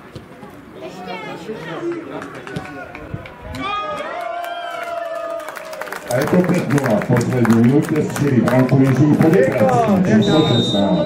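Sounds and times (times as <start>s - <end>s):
people clapping: 1.8s - 10.3s
scattered cheers: 2.2s - 6.3s
players and spectators shouting: 9.4s - 11.0s.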